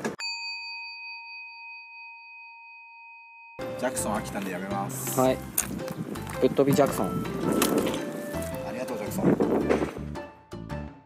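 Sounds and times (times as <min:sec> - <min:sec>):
bell-like chime: 0:00.2 - 0:04.4.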